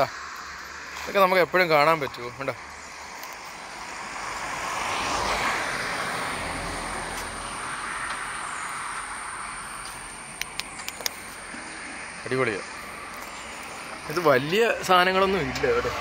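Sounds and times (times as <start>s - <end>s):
motor vehicle passing: 0.0s - 16.0s
sharp clicks: 9.8s - 11.3s.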